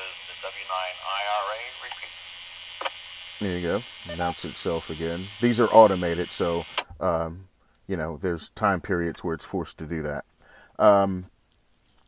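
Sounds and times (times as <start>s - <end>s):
automated radio voice: 0.0s - 2.2s, 3.4s - 6.8s
radio static hiss: 0.0s - 7.4s.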